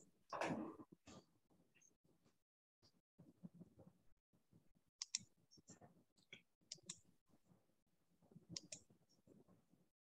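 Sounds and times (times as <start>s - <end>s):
computer mouse clicks: 5.0s - 5.3s, 6.2s - 7.1s, 8.5s - 8.9s.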